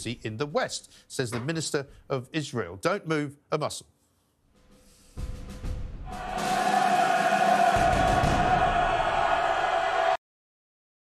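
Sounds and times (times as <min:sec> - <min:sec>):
dramatic theme music: 0:04.7 - 0:09.6
choir-like voices holding a chord: 0:06.1 - 0:10.2.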